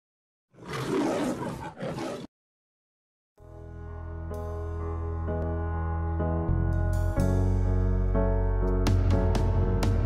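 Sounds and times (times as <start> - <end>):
lion roaring: 0.5 - 2.3.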